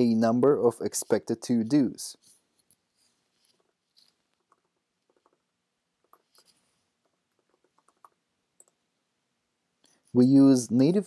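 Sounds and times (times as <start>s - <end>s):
computer keys typing: 3.5s - 8.8s.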